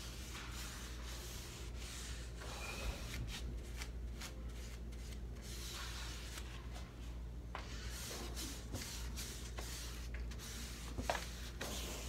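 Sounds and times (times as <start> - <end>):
hand rubbing painted wood: 0.0 - 6.5.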